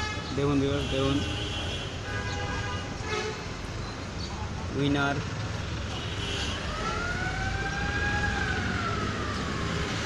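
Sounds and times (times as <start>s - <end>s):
street traffic rumble: 0.0s - 10.0s
siren wail: 6.6s - 10.0s.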